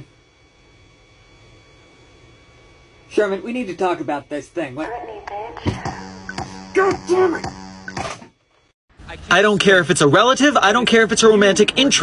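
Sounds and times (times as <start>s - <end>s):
high-pitched electrical whine: 0.0s - 5.0s, 5.7s - 9.5s.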